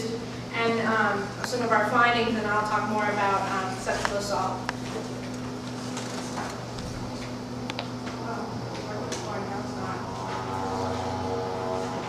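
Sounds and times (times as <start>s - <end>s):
steady droning hum: 0.0s - 12.0s.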